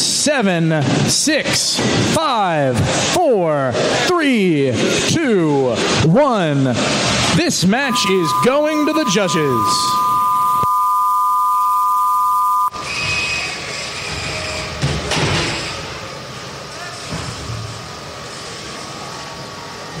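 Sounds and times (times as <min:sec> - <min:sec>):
two-tone electronic buzzer: 0:07.9 - 0:12.8.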